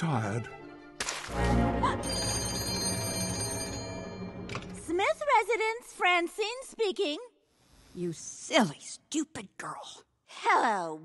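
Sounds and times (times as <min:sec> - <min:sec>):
background music: 0:00.0 - 0:05.5
telephone bell ringing: 0:01.9 - 0:04.5.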